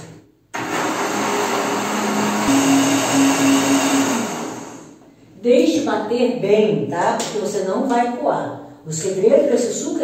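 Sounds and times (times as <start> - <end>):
blender motor running: 0.6 - 5.0.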